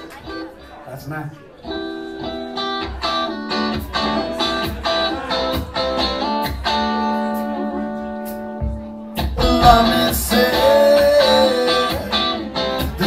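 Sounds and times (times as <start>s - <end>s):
electric guitar chords: 1.6s - 13.0s
bass notes: 9.4s - 11.0s.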